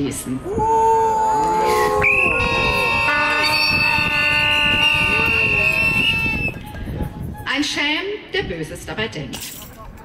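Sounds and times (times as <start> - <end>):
crowd booing and shouting: 0.4 - 7.0
horns and whistles blowing: 1.6 - 7.7
shrill high horn tone: 1.7 - 7.6.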